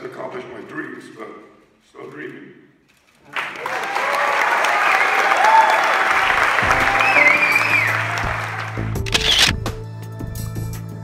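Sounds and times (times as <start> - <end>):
audience applauding: 3.3 - 9.5.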